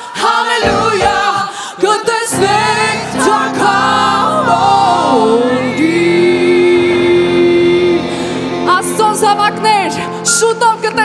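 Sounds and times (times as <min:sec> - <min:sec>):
person singing worship song: 0:00.0 - 0:08.7
steady musical backing: 0:00.1 - 0:11.0.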